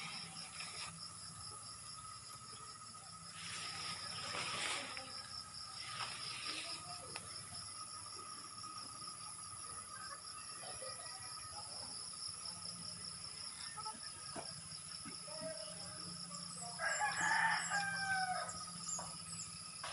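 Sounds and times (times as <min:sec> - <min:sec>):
rooster crowing: 0:16.7 - 0:18.8.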